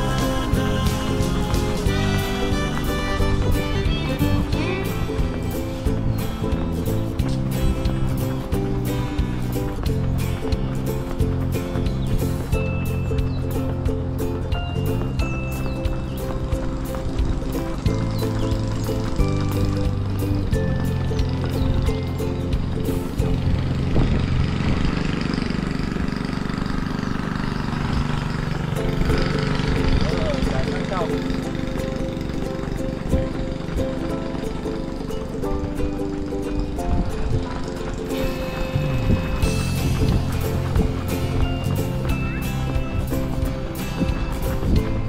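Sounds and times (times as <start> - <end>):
background music with held chords: 0.0 - 24.3, 30.7 - 45.0.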